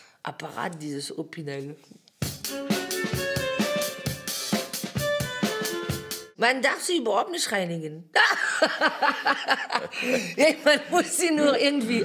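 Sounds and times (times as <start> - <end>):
drum kit beat: 2.2 - 6.4.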